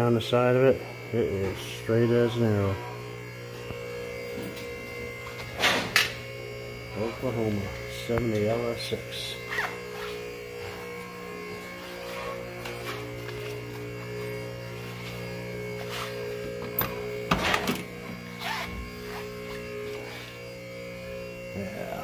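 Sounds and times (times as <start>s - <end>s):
electrical hum: 0.0s - 22.0s.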